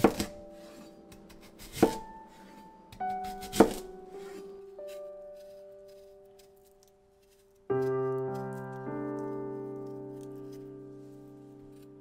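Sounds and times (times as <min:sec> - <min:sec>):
knife chopping on cutting board: 0:00.0 - 0:02.1, 0:02.9 - 0:05.5
soft piano music: 0:00.0 - 0:12.0.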